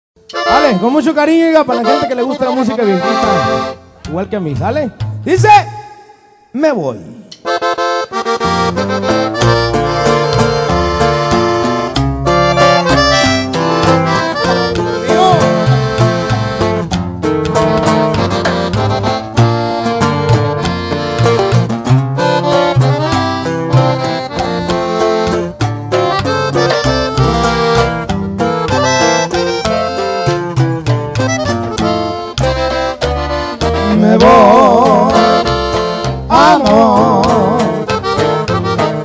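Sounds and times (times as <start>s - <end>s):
accordion melody: 0.2s - 5.2s, 7.3s - 39.0s
strummed guitar: 0.2s - 5.3s, 7.4s - 39.0s
tuba bass line: 0.3s - 6.1s, 7.1s - 39.0s.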